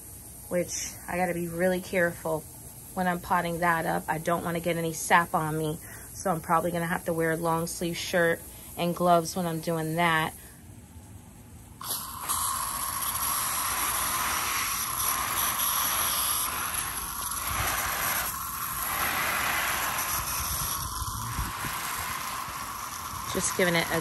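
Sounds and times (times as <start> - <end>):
hose water spraying on plants: 0.0 - 10.4, 11.8 - 24.0.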